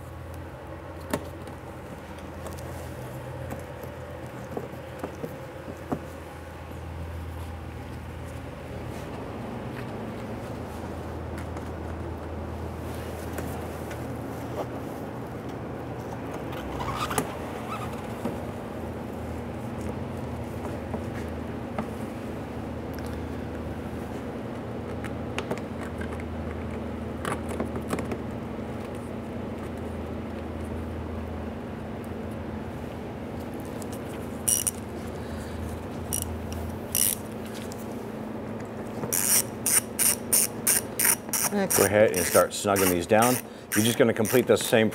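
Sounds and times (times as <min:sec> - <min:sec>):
steady low hum: 0:00.0 - 0:44.9
screws clicking and scraping: 0:34.5 - 0:34.8, 0:36.1 - 0:37.2, 0:39.1 - 0:44.4
ratchet clicking rapidly: 0:36.9 - 0:37.2, 0:39.1 - 0:44.5.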